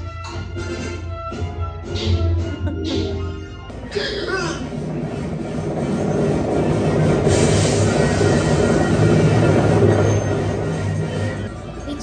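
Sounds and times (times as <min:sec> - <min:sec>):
film soundtrack music: 0:00.0 - 0:12.0
clattering rushing noise: 0:04.9 - 0:11.5.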